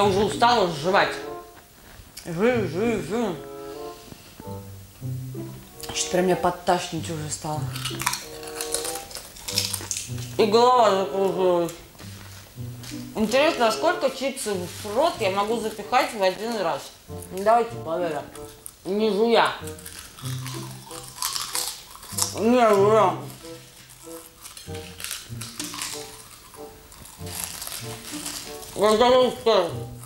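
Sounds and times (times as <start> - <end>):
background music: 0.0 - 30.0
chips crunching: 5.6 - 30.0.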